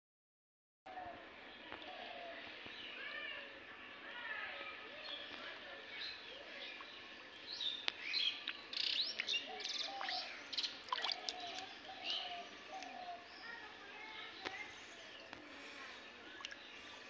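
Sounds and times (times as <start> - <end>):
faint outdoor background: 0.9 - 17.0
small birds chirping: 1.0 - 17.0.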